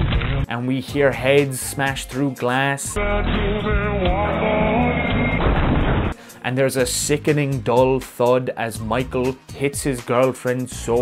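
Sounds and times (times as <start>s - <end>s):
pop song with singer: 0.9s - 5.6s
heavy crash impacts: 3.1s - 6.2s.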